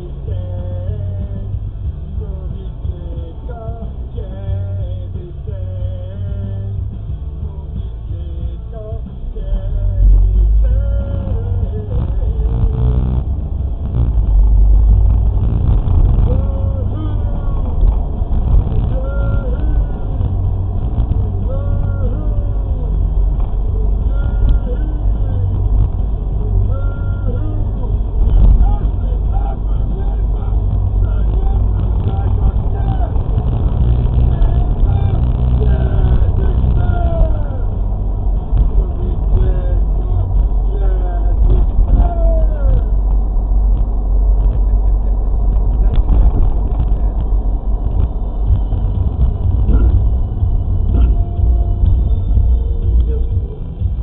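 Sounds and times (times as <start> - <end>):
vehicle wind and road noise: 0.0 - 54.0.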